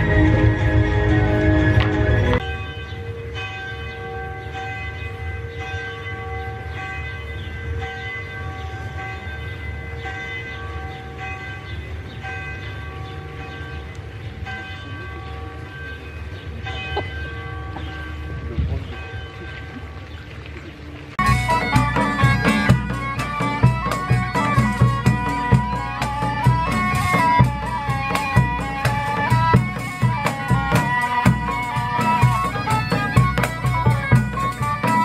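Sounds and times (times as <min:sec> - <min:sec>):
loud music: 0:00.0 - 0:02.4, 0:21.2 - 0:35.0
bell tolling: 0:21.2 - 0:35.0.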